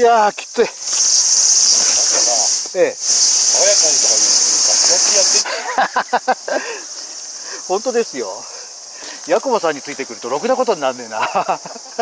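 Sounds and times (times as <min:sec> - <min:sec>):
cicada buzzing: 0:00.0 - 0:12.0.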